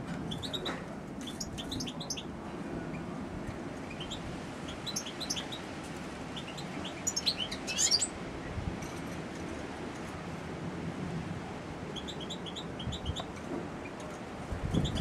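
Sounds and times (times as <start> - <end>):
bird twittering: 1.3 - 2.3, 3.9 - 5.6, 6.4 - 8.1.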